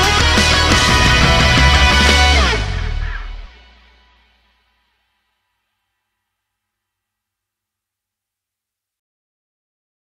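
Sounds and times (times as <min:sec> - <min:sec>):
rock song ring-out: 0:00.0 - 0:04.4.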